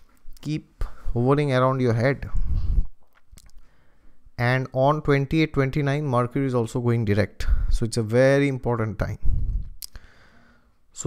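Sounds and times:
man speaking: 0.4s - 2.5s, 4.4s - 9.3s
mouth click: 3.0s - 3.7s, 9.6s - 10.0s
breath: 3.6s - 4.2s, 9.4s - 10.8s.

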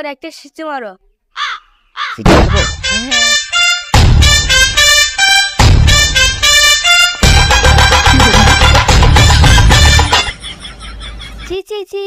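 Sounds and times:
crow cawing: 1.3s - 2.8s
person speaking: 2.2s - 3.4s, 8.0s - 8.7s.

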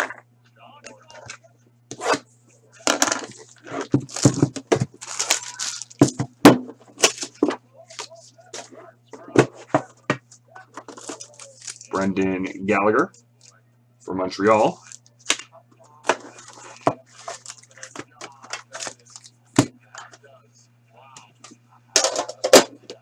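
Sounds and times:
low electrical hum: 0.0s - 23.0s
packaging crinkling and rustling: 3.3s - 6.2s, 10.8s - 11.9s, 16.3s - 19.3s.

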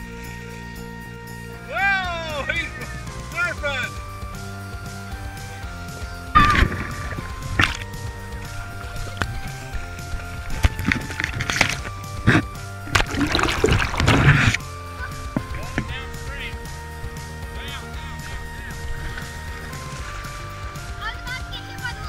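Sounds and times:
background music of held notes: 0.0s - 22.0s
creek water splashing: 1.6s - 22.0s
loud splash: 10.5s - 14.6s.

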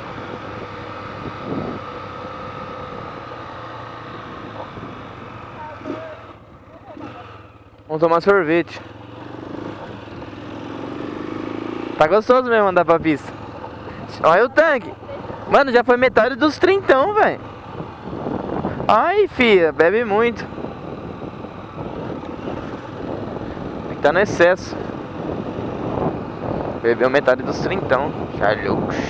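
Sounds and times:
wind on microphone: 0.0s - 3.3s, 4.1s - 6.0s, 17.1s - 29.0s
motorcycle engine accelerating: 0.0s - 29.0s.

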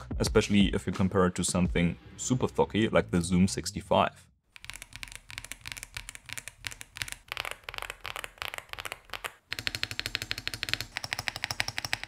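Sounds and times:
typing on mechanical keyboard: 4.6s - 12.0s.

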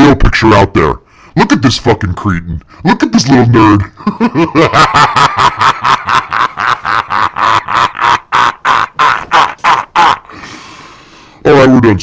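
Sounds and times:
man laughing hard: 3.8s - 10.4s.

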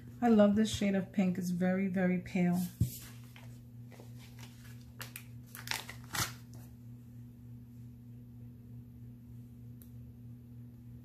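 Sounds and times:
steady low hum: 0.0s - 11.0s
paper rustling: 2.6s - 6.6s.

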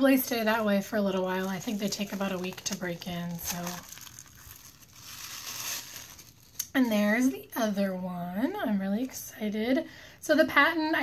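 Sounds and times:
tissue paper crinkling: 0.4s - 7.3s.

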